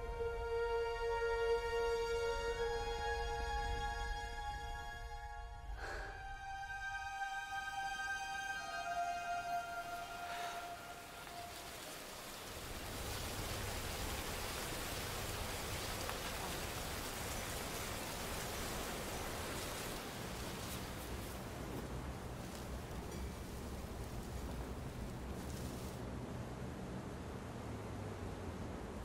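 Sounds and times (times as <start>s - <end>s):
music: 0.0s - 12.4s
steady hiss of noise: 5.8s - 29.0s.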